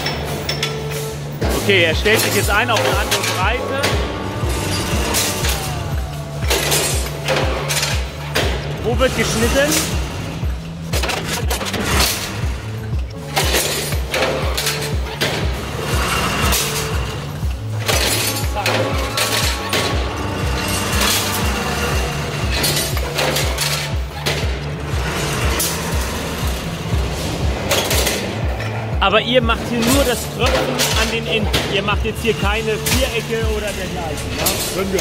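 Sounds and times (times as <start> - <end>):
background music with beat: 0.0 - 35.0
machine clanking steel bars: 0.0 - 35.0.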